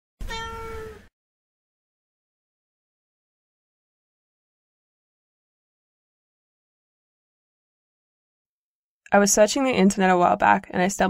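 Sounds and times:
cat meowing: 0:00.2 - 0:01.1.

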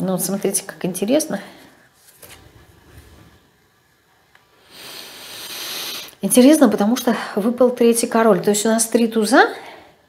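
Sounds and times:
breathy hiss: 0:04.5 - 0:06.2.

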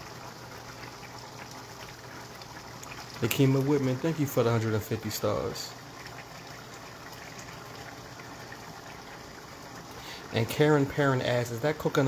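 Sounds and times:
sauce simmering in a pan: 0:00.0 - 0:12.0.

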